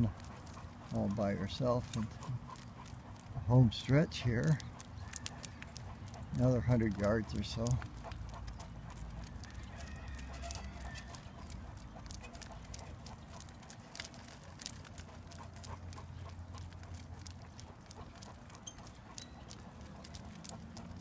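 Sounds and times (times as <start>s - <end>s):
dog claws clicking on asphalt: 0.0s - 21.0s
wheels rumbling on road: 0.0s - 21.0s.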